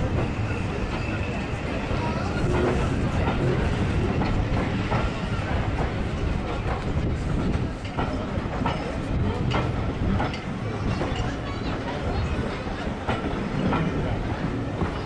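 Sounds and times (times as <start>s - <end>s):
train coaches rumbling past: 0.0s - 15.0s.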